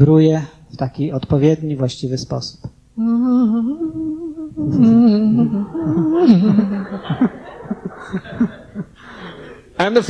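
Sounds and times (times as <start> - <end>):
man humming: 3.0 - 9.0.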